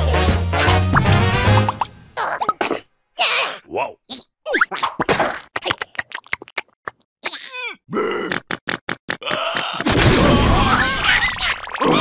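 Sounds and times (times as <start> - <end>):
cartoon groan: 3.2 - 4.0, 7.2 - 8.5
strained grunt: 7.3 - 8.5.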